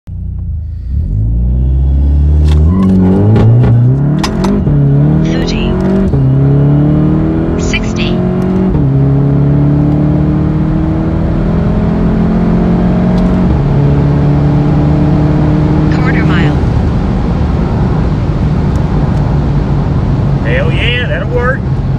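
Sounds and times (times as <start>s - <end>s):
car engine accelerating: 0.1s - 21.9s.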